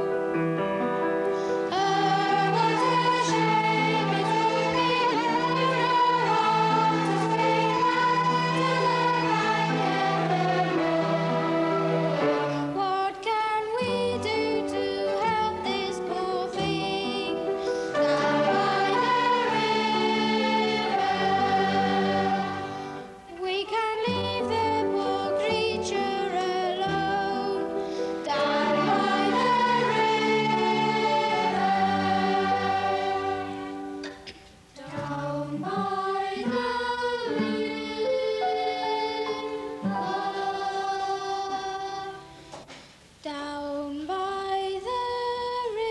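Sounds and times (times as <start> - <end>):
children's choir singing: 0.0 - 0.2, 1.6 - 42.7, 43.3 - 45.9
instrumental accompaniment: 0.0 - 13.2, 13.8 - 23.4, 24.0 - 43.0.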